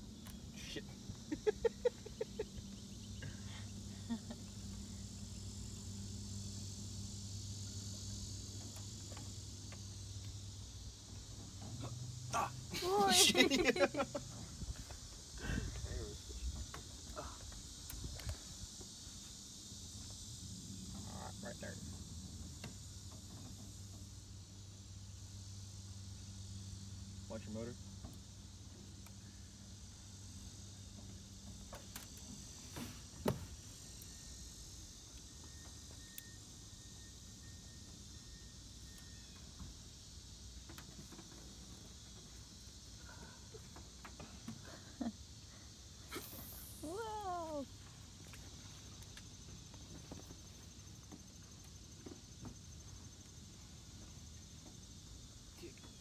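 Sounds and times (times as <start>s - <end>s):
insects droning: 0.0s - 56.0s.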